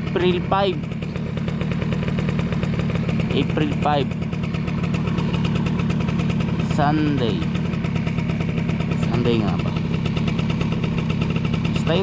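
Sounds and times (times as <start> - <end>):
small motorbike engine idling: 0.0 - 12.0.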